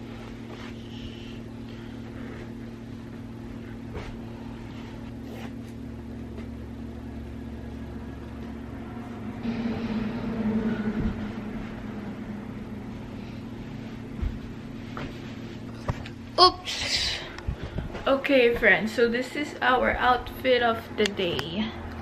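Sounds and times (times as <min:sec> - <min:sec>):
low mechanical hum: 0:00.0 - 0:22.0.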